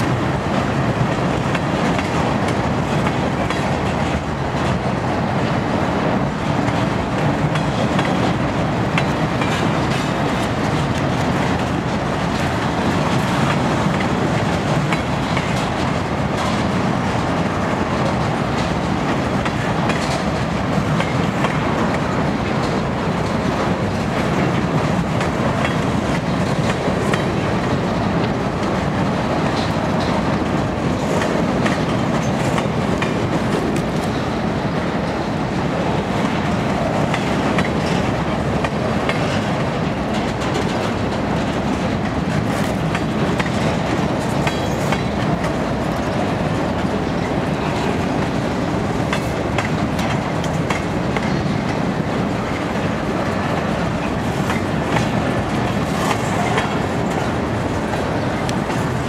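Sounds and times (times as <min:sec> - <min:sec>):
freight train cars rolling past: 0:00.0 - 0:59.0
sharp rail clicks: 0:00.0 - 0:59.0.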